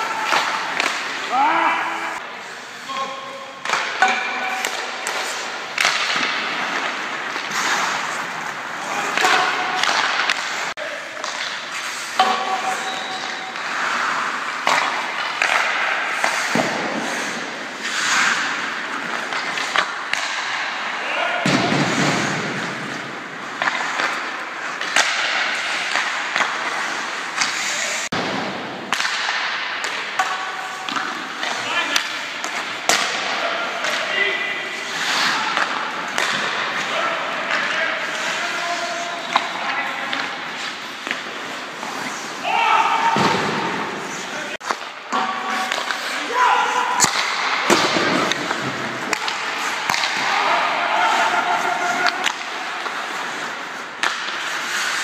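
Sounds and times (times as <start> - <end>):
sticks striking pucks: 0.0 - 2.2, 2.9 - 55.0
pucks thudding off boards: 0.0 - 2.3, 3.6 - 55.0
skates scraping on ice: 0.0 - 55.0
players calling out: 42.0 - 53.0.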